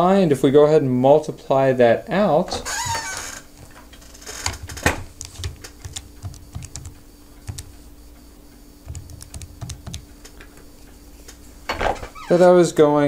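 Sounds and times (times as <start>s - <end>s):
faint steady hum: 0.0s - 13.0s
calculator keys clicking: 4.5s - 7.8s, 8.9s - 10.4s.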